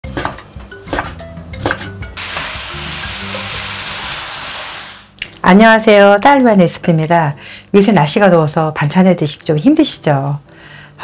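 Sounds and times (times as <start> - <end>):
soft music: 0.0 - 4.6
food sizzling in a frying pan: 2.2 - 5.2.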